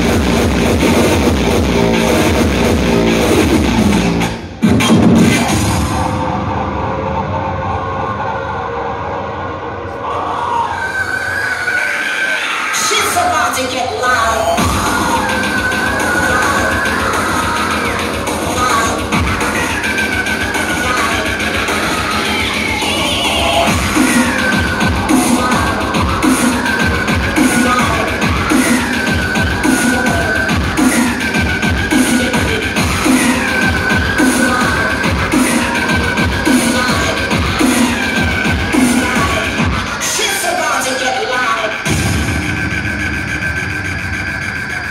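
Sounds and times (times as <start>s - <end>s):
electronic dance music: 0.0s - 44.9s
fast kick-drum beat: 17.5s - 19.7s, 23.7s - 39.9s.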